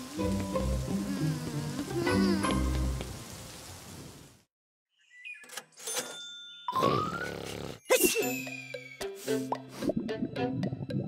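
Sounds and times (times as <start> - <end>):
light cartoon music: 0.0 - 3.0, 6.5 - 11.0.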